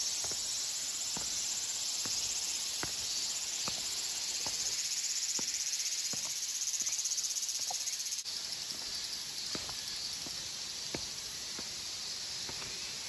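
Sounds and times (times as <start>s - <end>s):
footsteps on concrete steps: 0.0s - 7.8s, 8.6s - 13.0s
cicadas droning: 0.0s - 13.0s.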